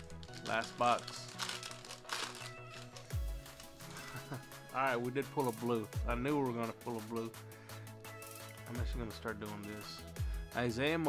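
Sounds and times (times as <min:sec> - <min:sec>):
foil card pack tearing: 0:00.0 - 0:04.4
background music with bass: 0:00.0 - 0:11.0.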